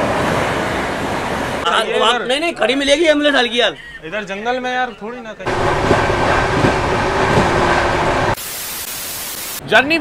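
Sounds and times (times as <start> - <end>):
train roaring past: 5.5 - 8.4.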